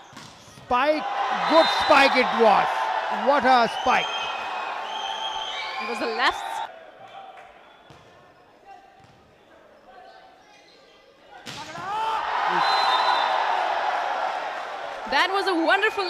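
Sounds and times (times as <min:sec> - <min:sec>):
crowd cheering and yelling: 0:00.8 - 0:06.7, 0:11.8 - 0:16.0.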